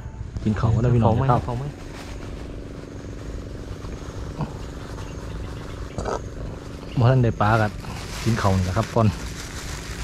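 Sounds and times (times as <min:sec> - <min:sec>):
steady motor hum: 0:00.0 - 0:10.0.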